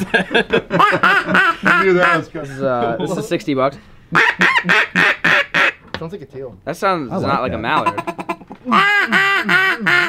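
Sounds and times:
duck call quacks: 0:00.8 - 0:02.2, 0:04.1 - 0:05.8, 0:07.8 - 0:10.0.

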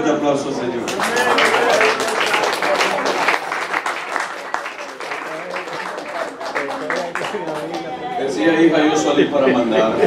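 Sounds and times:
crowd applauding: 0:00.8 - 0:08.1.

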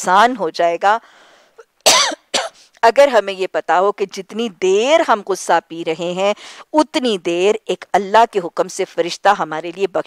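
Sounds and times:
catch of breath: 0:01.1 - 0:01.6
woman coughing: 0:01.8 - 0:02.6.

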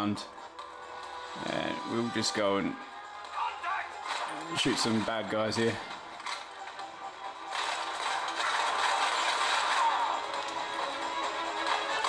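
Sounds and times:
game background music: 0:00.0 - 0:12.0.

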